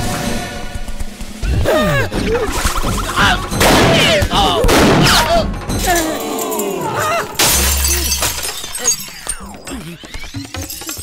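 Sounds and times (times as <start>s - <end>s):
glass shards scattering and clinking: 7.4s - 9.4s
glass smashing on wooden floor: 7.4s - 9.4s.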